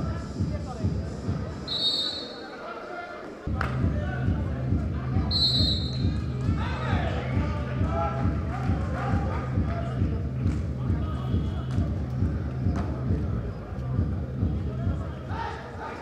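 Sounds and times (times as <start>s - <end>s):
crowd voices: 0.0s - 16.0s
referee's whistle blasts: 1.7s - 2.6s, 5.2s - 6.2s.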